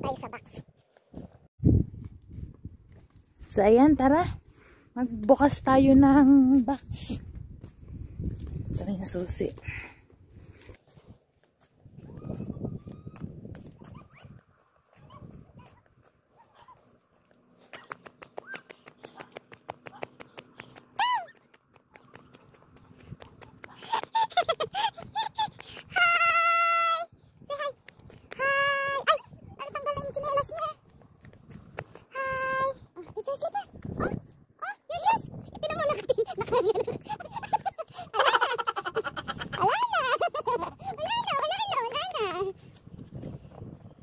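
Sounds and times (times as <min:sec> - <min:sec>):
young child calling and shouting: 0:25.8 - 0:30.8, 0:32.1 - 0:36.1, 0:40.9 - 0:42.6.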